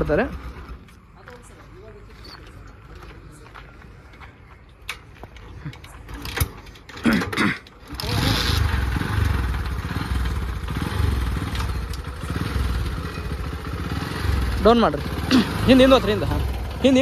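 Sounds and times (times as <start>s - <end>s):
motorcycle engine running: 7.8s - 17.0s.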